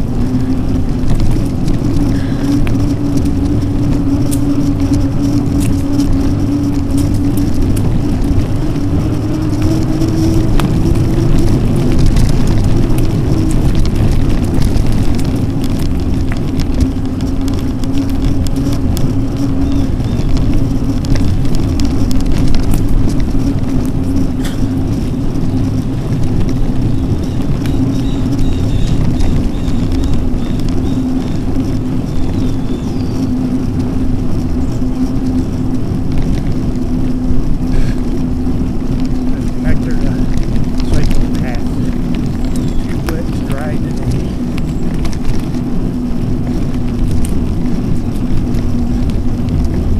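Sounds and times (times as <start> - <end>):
bike tyre noise: 0.0 - 49.9
steady hum: 0.0 - 49.9
wind rumble on microphone: 0.0 - 49.9
small clicks: 0.3 - 35.4.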